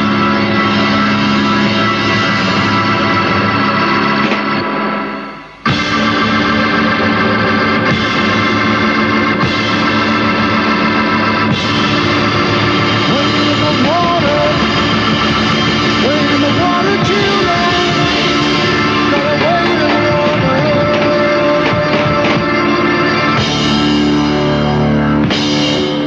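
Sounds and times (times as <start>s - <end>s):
rock band with organ chords: 0.0s - 26.0s.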